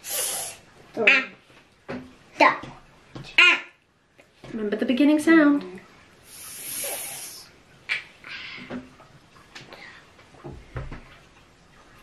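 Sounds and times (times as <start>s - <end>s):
person hissing s sound: 0.0s - 0.6s, 6.3s - 7.5s.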